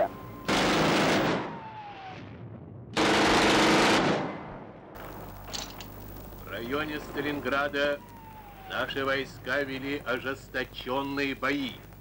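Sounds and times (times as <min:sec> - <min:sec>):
machine-gun fire: 0:00.5 - 0:02.1, 0:03.0 - 0:04.7.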